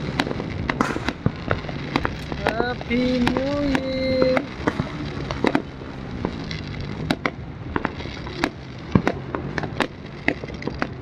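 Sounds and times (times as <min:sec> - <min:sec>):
firework bang: 0:00.0 - 0:11.0
fireworks popping and crackling: 0:00.0 - 0:11.0.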